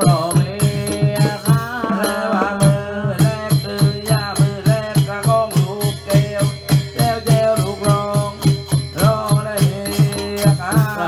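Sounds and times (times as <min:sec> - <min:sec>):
drums beating fast rhythm: 0:00.0 - 0:11.0
small cymbals ringing: 0:00.0 - 0:11.0.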